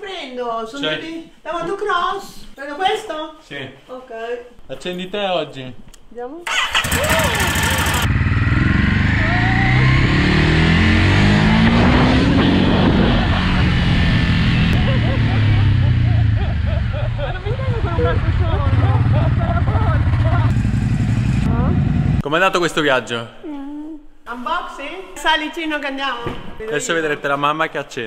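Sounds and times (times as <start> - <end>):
motorcycle engine: 6.5 - 22.3
wind noise: 11.2 - 20.4.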